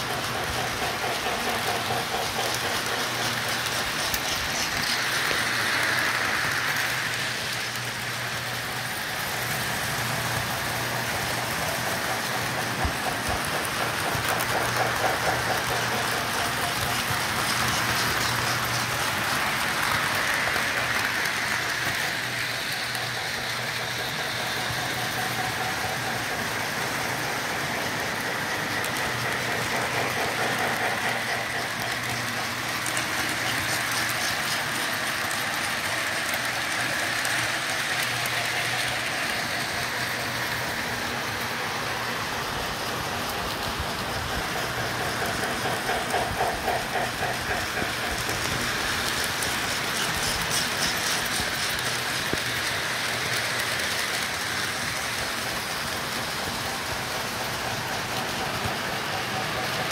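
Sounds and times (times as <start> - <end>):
model trains clattering on track: 0.0 - 59.9.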